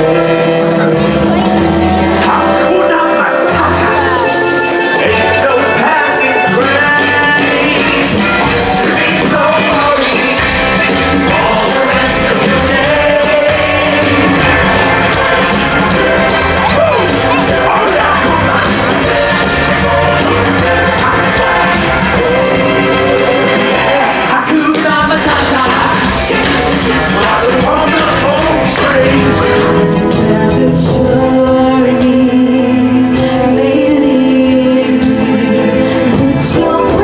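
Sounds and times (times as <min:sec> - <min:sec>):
live band with singers: 0:00.0 - 0:37.0.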